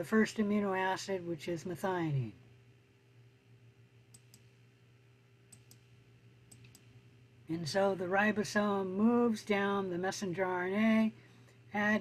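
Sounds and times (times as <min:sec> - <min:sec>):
low steady hum: 0:00.0 - 0:12.0
computer mouse clicks: 0:04.1 - 0:04.6, 0:05.5 - 0:07.0.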